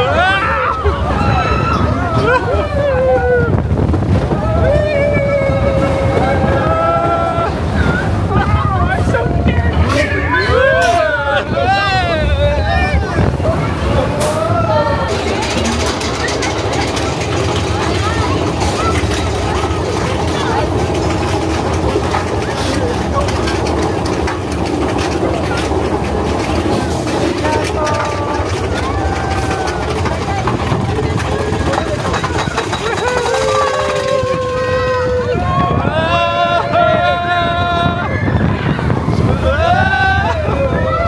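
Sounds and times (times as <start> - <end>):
riders shouting and cheering: 0.0 - 41.0
roller coaster rumbling: 0.0 - 41.0.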